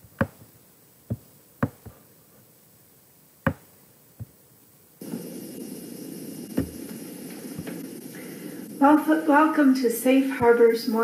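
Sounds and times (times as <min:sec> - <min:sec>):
room noise hiss and hum: 0:00.0 - 0:11.0.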